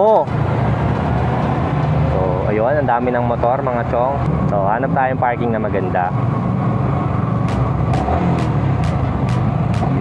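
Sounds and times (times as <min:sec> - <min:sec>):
voice: 0:02.1 - 0:06.1
motorcycle engine running: 0:06.5 - 0:10.0.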